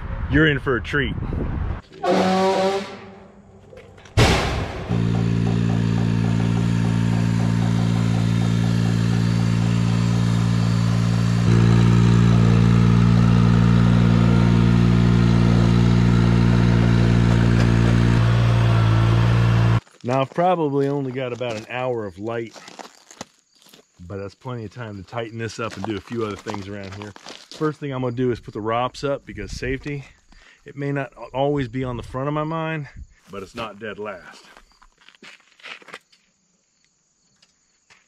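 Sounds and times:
tractor engine running: 0:01.9 - 0:19.8.

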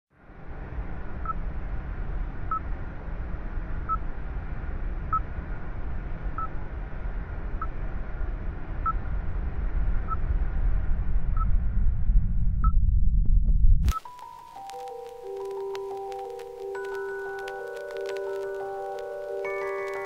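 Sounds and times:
low rumble: 0:00.1 - 0:19.2.

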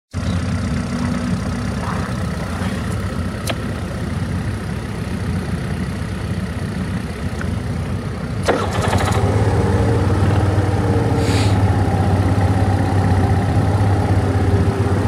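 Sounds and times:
scooter engine idling: 0:00.2 - 0:15.0
sharp click: 0:03.4 - 0:03.6.

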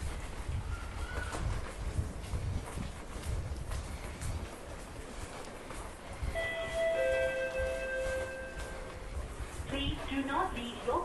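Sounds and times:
station hubbub: 0:02.6 - 0:11.0
two-tone announcement chime: 0:06.4 - 0:09.0
recorded announcement: 0:09.7 - 0:11.0.

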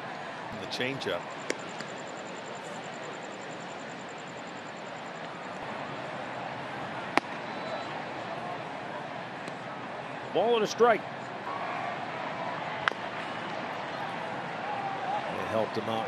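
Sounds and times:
crowd murmur: 0:00.0 - 0:16.0.

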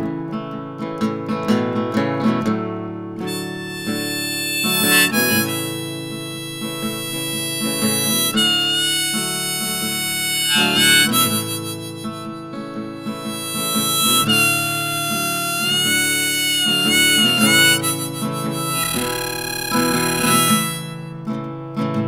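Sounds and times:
acoustic guitar: 0:00.0 - 0:22.0
harmonica solo: 0:03.2 - 0:21.6.

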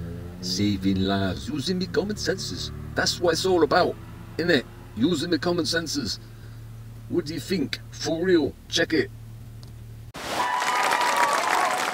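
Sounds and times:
low steady hum: 0:00.5 - 0:10.1
audience applause: 0:10.2 - 0:11.9.

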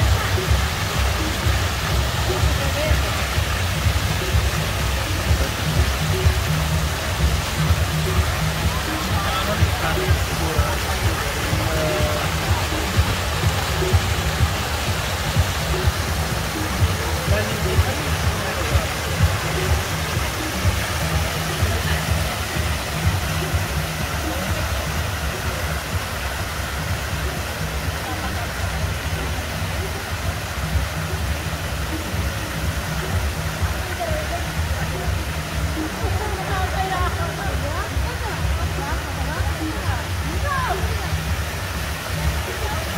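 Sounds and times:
faint voices: 0:00.0 - 0:42.9
fountain water splashing: 0:00.0 - 0:42.9
music with heavy bass beat: 0:00.0 - 0:42.9.

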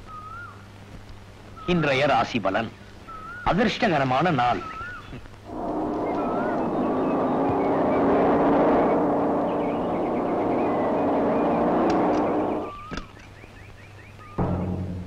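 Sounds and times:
birds chirping: 0:00.0 - 0:00.8, 0:01.4 - 0:15.0
car engine running: 0:07.3 - 0:12.7.

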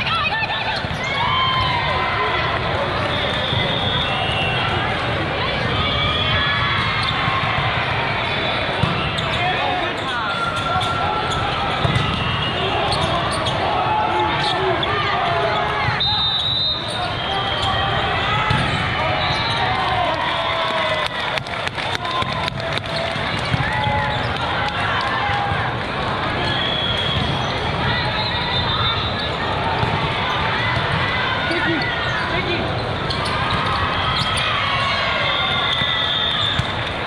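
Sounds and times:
many voices talking and calling: 0:00.0 - 0:37.0
sneakers squeaking on floor: 0:08.3 - 0:13.7, 0:31.5 - 0:34.6
volleyballs thudding: 0:11.7 - 0:12.3, 0:18.4 - 0:18.9.

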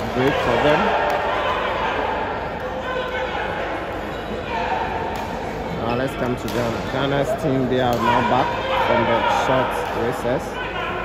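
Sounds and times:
rackets hitting shuttlecock: 0:00.0 - 0:01.4, 0:05.0 - 0:05.6, 0:06.2 - 0:06.9
crowd chatter echoing: 0:00.0 - 0:11.0.

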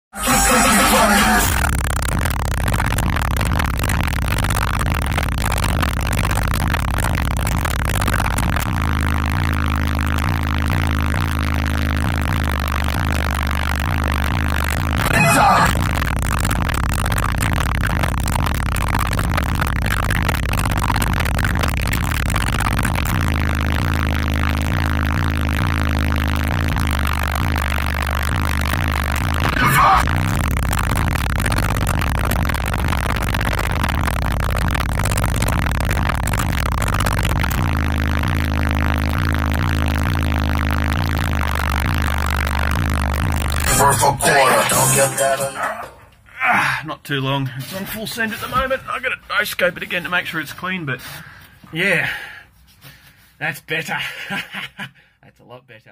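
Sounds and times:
bass-heavy music from subwoofers: 0:00.0 - 0:46.1
loud noise bursts: 0:00.1 - 0:46.3.

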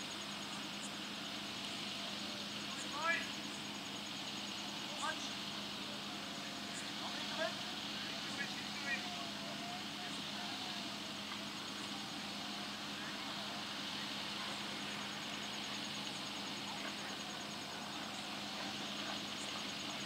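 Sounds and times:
constant low hum: 0:00.0 - 0:20.0
steady hiss: 0:00.0 - 0:20.0
distant shouts of players: 0:04.6 - 0:20.0.

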